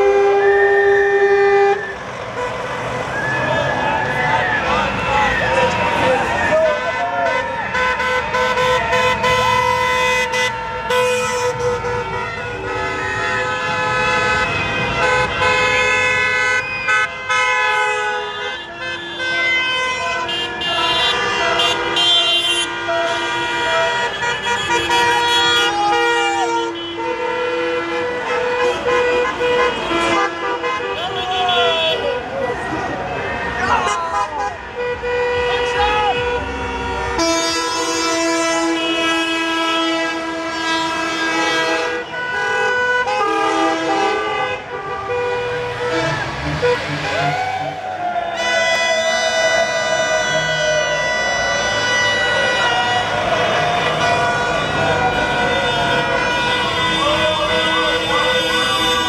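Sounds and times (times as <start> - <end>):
car horns honking: 0.0 - 59.0
cars driving past: 0.0 - 59.0
voices shouting: 0.6 - 12.5, 18.6 - 26.8, 28.1 - 38.0, 43.3 - 59.0.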